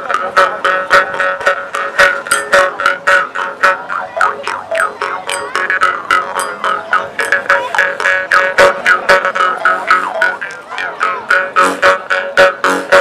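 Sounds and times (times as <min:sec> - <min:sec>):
jaw harps twanging: 0:00.1 - 0:13.0.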